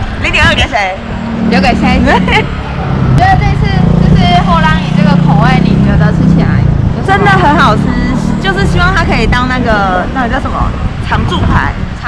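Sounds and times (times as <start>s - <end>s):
low street rumble: 0.0s - 12.0s
women talking: 0.2s - 2.5s, 3.2s - 12.0s.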